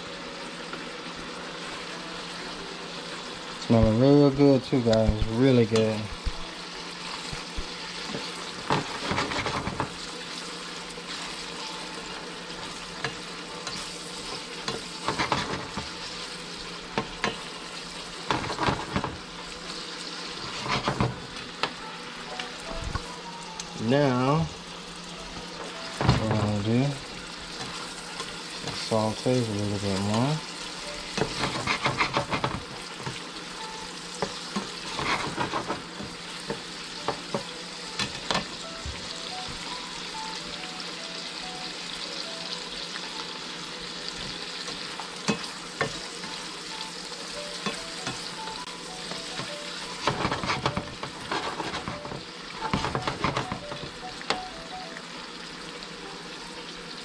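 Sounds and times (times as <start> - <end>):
vegetables sizzling in a pan: 0.0 - 57.0
spatula scraping a pan: 20.4 - 21.2, 31.2 - 32.6, 34.6 - 35.8, 50.0 - 53.5.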